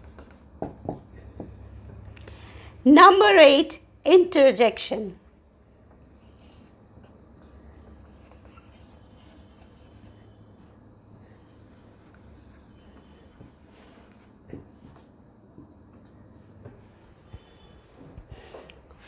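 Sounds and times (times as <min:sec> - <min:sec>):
marker pen writing on whiteboard: 0:00.0 - 0:01.9, 0:06.1 - 0:15.1.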